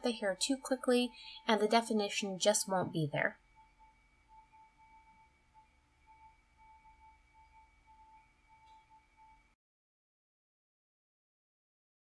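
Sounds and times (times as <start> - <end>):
faint high-pitched hum: 0.0 - 9.6.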